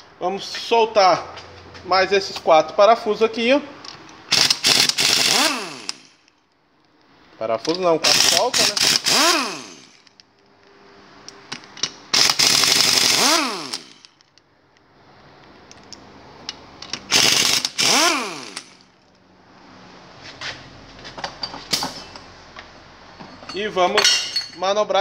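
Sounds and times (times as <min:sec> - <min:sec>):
power drill spinning: 0:04.3 - 0:06.2, 0:08.1 - 0:10.1, 0:12.1 - 0:14.1, 0:17.0 - 0:18.9.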